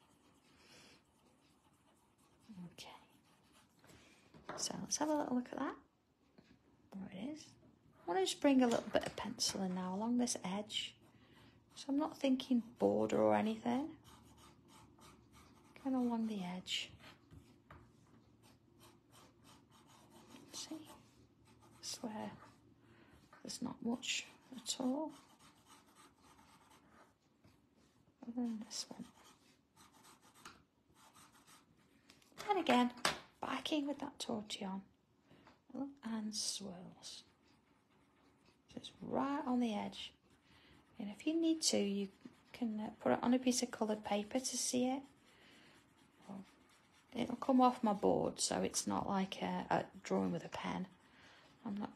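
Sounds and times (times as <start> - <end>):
chalk pencil scratching on tile: 0.0 - 3.8, 11.7 - 17.6, 18.4 - 22.6, 23.8 - 27.2, 28.5 - 31.7, 39.3 - 47.9.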